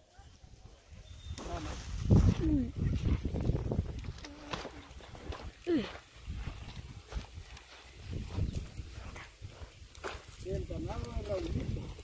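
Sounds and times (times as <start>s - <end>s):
footsteps and crutches on dirt: 1.0s - 12.0s.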